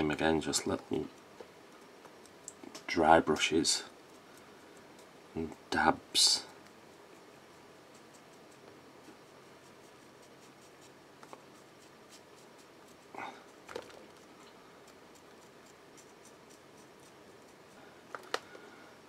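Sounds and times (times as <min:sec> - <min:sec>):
paintbrush scratching: 0:06.8 - 0:17.9.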